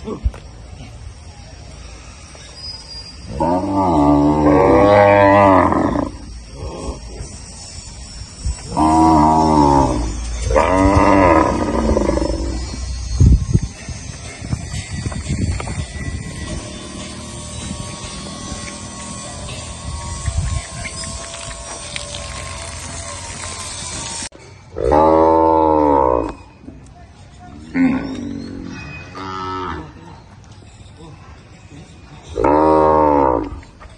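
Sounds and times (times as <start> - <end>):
cattle bellowing: 3.3 - 7.1, 8.7 - 12.8, 16.5 - 24.2.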